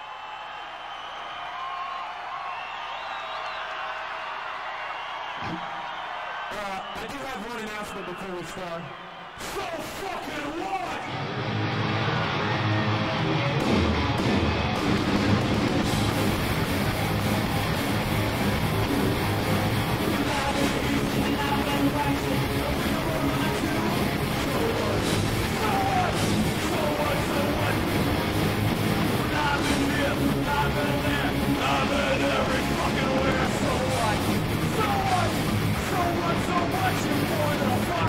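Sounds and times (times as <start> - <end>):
crowd cheering and screaming: 0.0 - 38.0
drums: 9.3 - 38.0
distorted electric guitars: 11.0 - 38.0
bass guitar: 11.1 - 38.0.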